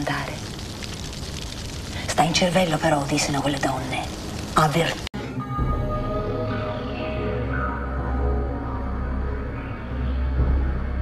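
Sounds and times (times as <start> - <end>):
low droning horror score: 3.6 - 11.0.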